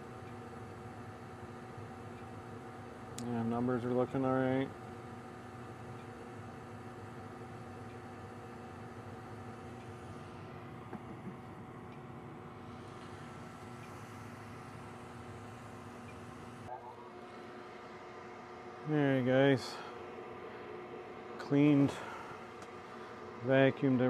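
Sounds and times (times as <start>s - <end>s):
furnace motor hum: 0.0s - 24.0s.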